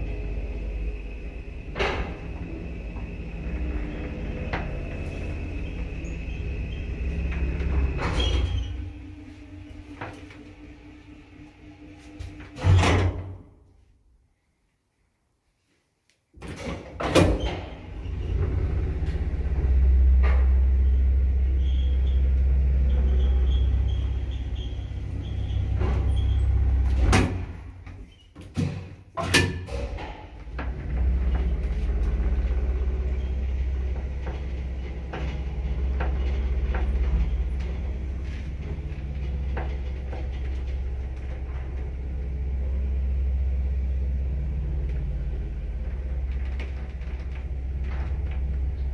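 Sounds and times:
lift car stopping with clunk: 0.0 - 13.4, 16.4 - 48.9
lift running hum: 0.0 - 13.8, 16.4 - 48.9.

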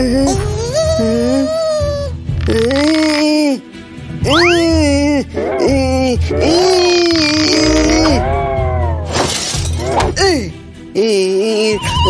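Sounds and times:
background music: 0.0 - 12.0
strained wordless vocalizing: 2.2 - 9.0.

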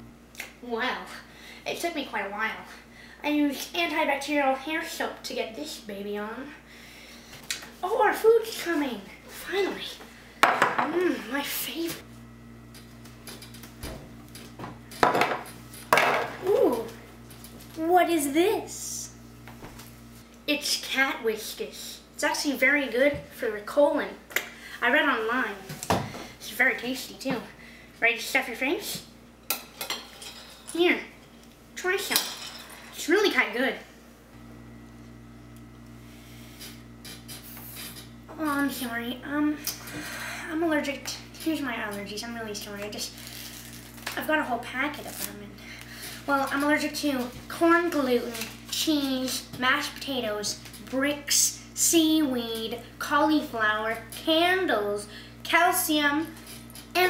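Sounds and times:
low electrical hum: 0.0 - 57.0.

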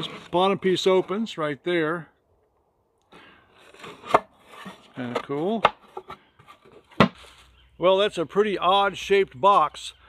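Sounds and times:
man speaking: 0.1 - 2.1, 5.0 - 5.7, 7.8 - 10.0.

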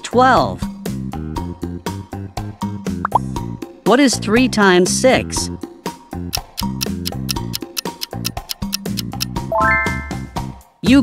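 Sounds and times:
cartoon plop rising blips: 3.1 - 3.3
children's music with steady beat: 4.9 - 11.0.

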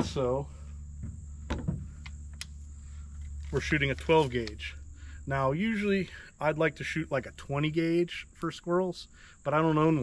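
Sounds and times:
high insect drone: 0.0 - 10.0
gun knock on truck bed: 1.0 - 1.9.

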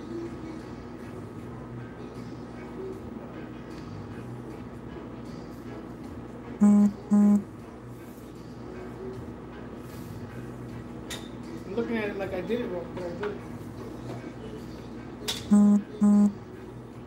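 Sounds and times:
background music: 0.0 - 17.0
low electronic beeps: 6.6 - 7.4, 15.5 - 16.4.

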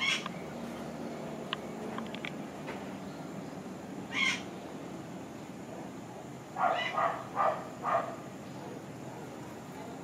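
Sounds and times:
hummingbird high call: 0.0 - 0.6, 3.1 - 4.5, 6.6 - 8.9
low background noise: 0.0 - 10.0.

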